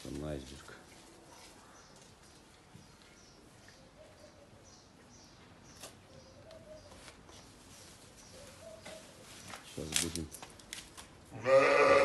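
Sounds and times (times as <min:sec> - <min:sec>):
birds chirping: 0:00.0 - 0:10.7.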